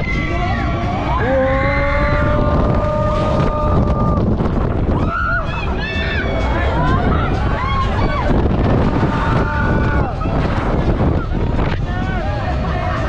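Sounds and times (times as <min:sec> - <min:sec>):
people screaming: 0:00.0 - 0:04.2, 0:04.9 - 0:13.0
wind rushing over microphone: 0:00.0 - 0:13.0.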